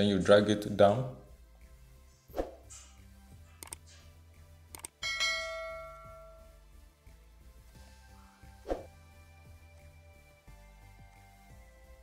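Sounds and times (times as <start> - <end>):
mouse clicks: 3.6 - 3.9, 4.7 - 5.0
bell ding: 5.0 - 6.5.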